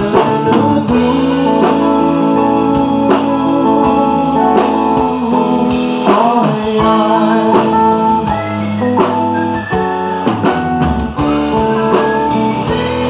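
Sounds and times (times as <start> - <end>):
bass guitar: 0.0 - 13.0
drum kit: 0.0 - 13.0
electric guitar lines: 0.0 - 13.0.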